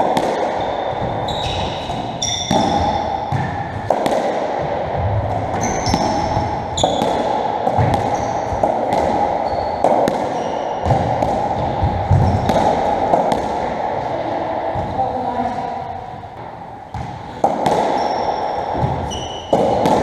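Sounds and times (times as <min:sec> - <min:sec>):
shoes squeaking on wooden floor: 0:00.6 - 0:03.0, 0:05.6 - 0:07.0, 0:09.4 - 0:09.8, 0:18.0 - 0:19.6
ball cracking off rackets and walls: 0:16.9 - 0:20.0.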